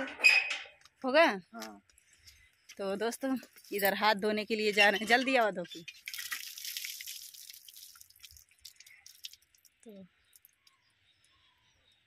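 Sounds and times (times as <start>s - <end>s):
water splashing on concrete: 5.8s - 10.5s.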